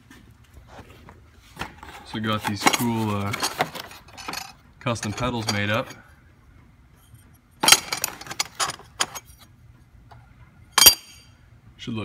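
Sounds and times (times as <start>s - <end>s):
metal parts clinking and rattling: 2.0s - 6.0s, 7.6s - 9.5s, 10.8s - 11.3s.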